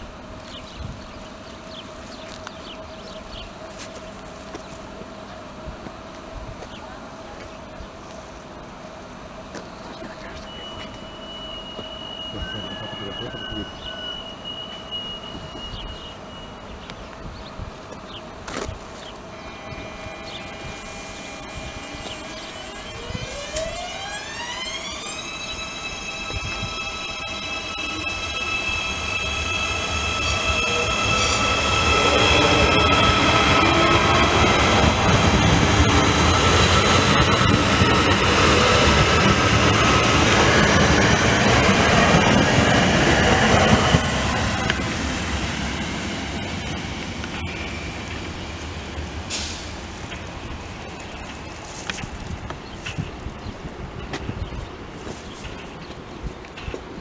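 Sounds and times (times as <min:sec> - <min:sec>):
train whine: 0:00.0 - 0:57.0.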